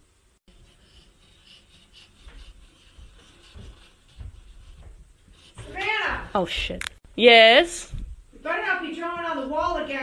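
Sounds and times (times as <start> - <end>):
felt-tip marker scratching: 0.5 - 6.1.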